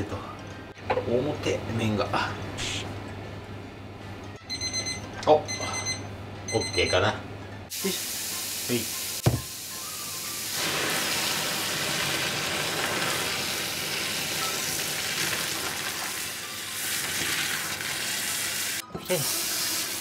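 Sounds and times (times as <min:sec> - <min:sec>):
knock: 0:09.2 - 0:09.5
running tap: 0:10.5 - 0:20.0.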